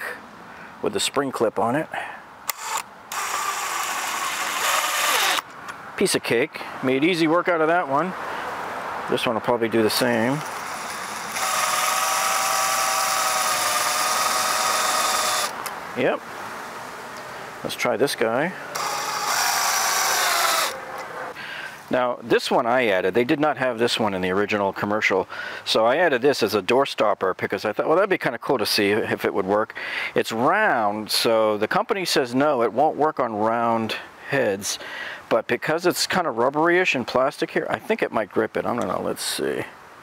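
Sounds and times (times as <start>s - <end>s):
cordless drill with gear whine: 2.5s - 5.4s, 10.4s - 15.6s, 18.7s - 20.8s.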